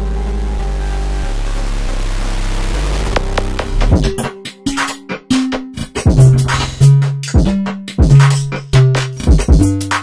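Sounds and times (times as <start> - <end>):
rising white-noise sweep: 0.0 - 4.0
sustained bass notes: 0.0 - 4.3.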